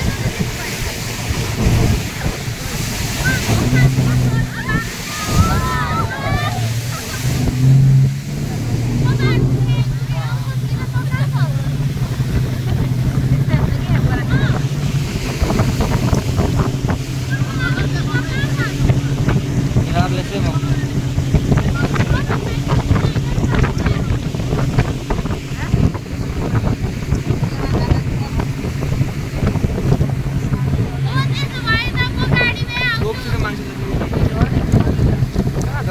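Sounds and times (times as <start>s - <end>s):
boat engine drone: 0.0s - 35.9s
people's voices: 0.0s - 35.9s
rushing water: 0.0s - 35.9s
wind buffeting microphone: 0.0s - 35.9s.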